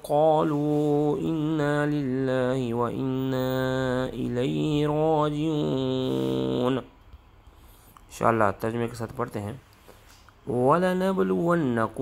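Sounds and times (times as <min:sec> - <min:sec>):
man chanting melodically: 0:00.0 - 0:07.0, 0:08.1 - 0:09.6, 0:10.4 - 0:12.0.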